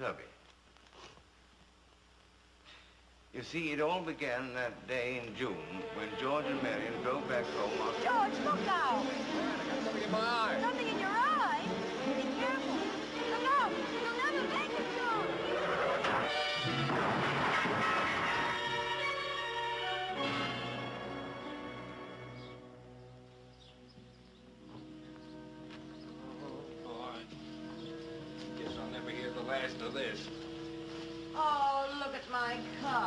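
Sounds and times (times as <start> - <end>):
orchestral music: 5.4 - 23.1, 24.9 - 31.6
car crash: 15.6 - 19.4.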